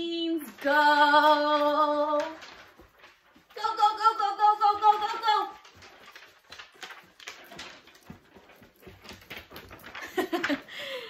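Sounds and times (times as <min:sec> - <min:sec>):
paper sheet rustling: 0:00.0 - 0:11.0
person moving about: 0:00.5 - 0:11.0.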